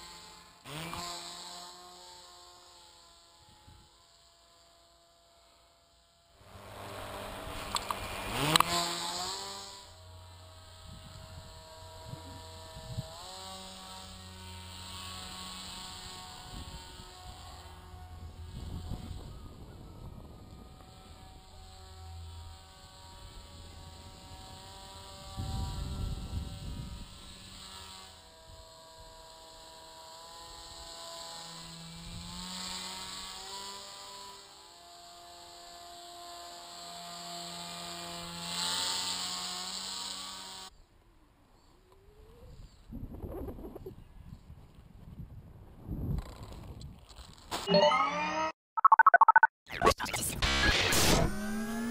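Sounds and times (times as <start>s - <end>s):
electric motor and propeller whining: 0.0s - 40.8s, 50.4s - 51.9s.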